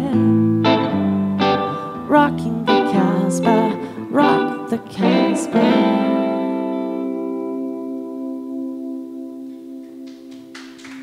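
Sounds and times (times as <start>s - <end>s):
person singing: 0.0s - 9.2s
electric guitar chord: 0.0s - 10.9s.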